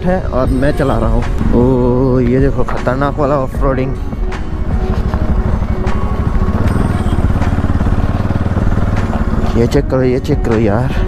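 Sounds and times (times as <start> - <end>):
motorcycle engine under load: 0.5 - 11.0.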